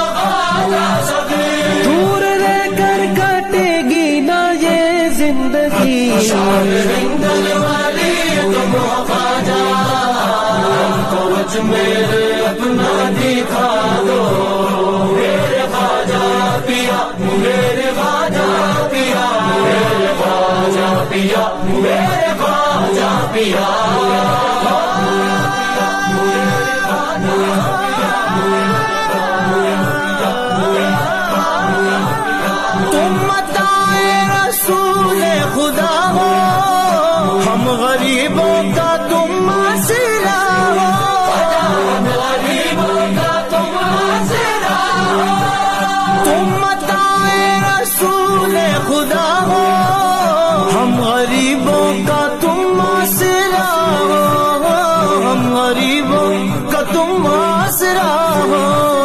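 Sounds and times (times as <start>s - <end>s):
person singing devotional song: 0.0s - 59.0s
steady drone: 5.7s - 50.9s.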